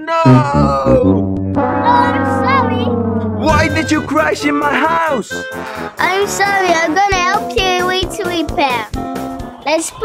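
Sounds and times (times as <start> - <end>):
sad trombone note: 1.0 - 5.6.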